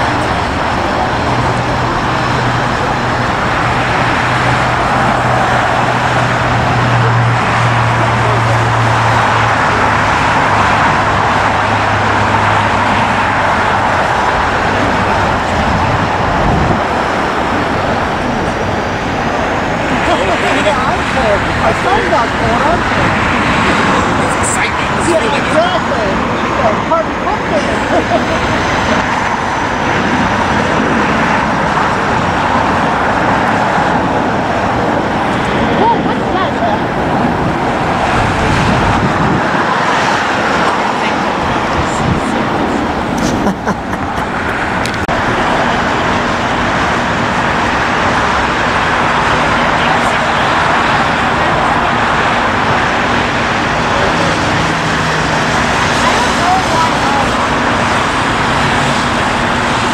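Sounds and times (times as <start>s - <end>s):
jet engines roaring: 0.0s - 59.9s
road traffic: 0.0s - 59.9s.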